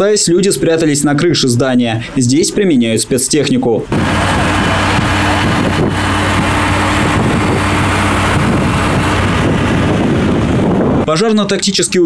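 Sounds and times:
engine running with low drone: 3.8 - 11.1.

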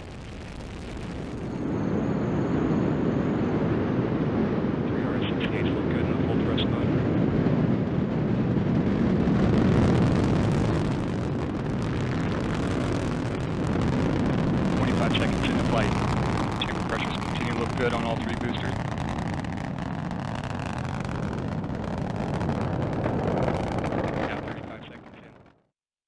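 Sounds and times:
rocket engines rumbling: 0.0 - 25.6.

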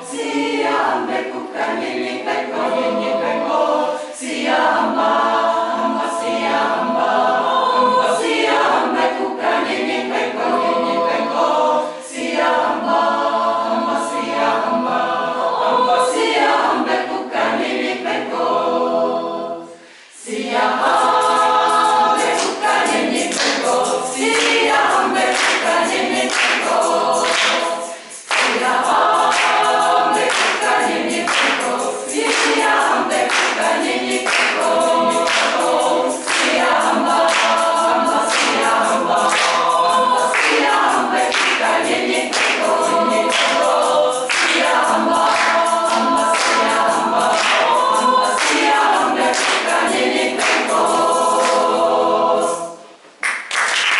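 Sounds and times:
women's choir singing a cappella: 0.0 - 53.0.

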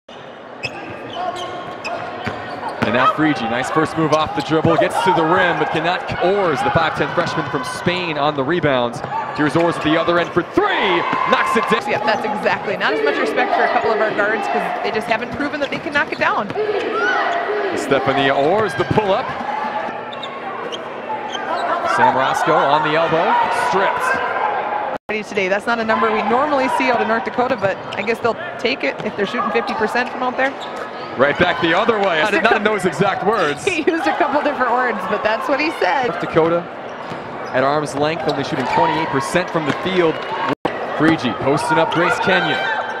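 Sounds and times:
sneaker squeaks: 0.1 - 3.2, 15.4 - 17.5, 18.4 - 22.0, 29.0 - 31.2, 36.8 - 39.1
arena crowd murmur: 0.4 - 43.0.

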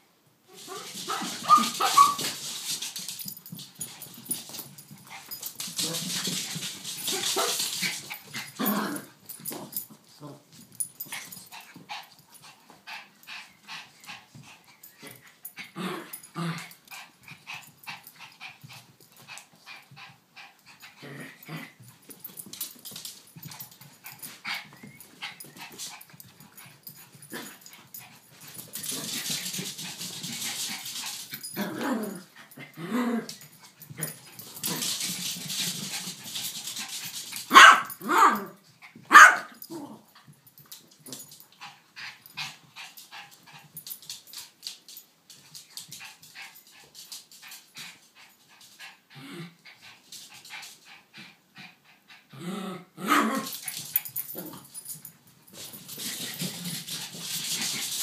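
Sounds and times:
small dogs growling and barking: 0.5 - 2.5, 5.2 - 9.8, 15.0 - 18.1, 20.5 - 21.9, 27.2 - 36.0, 37.0 - 40.1, 52.3 - 54.9.

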